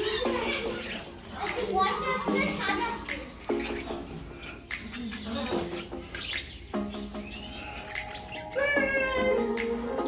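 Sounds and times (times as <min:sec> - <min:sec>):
parakeets chattering and warbling: 0:00.0 - 0:10.0.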